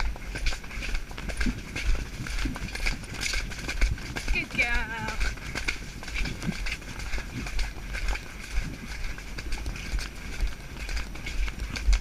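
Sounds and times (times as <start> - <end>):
hoofbeats on muddy track: 0.0 - 12.0
wind buffeting camera: 0.0 - 12.0.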